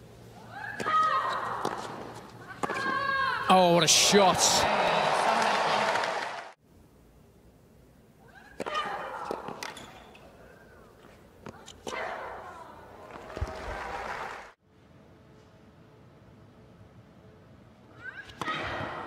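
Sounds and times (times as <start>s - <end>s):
faint hum: 0.0s - 19.0s
rackets striking tennis ball: 0.8s - 3.2s, 8.6s - 10.3s
crowd cheering: 3.5s - 6.6s, 13.0s - 14.6s.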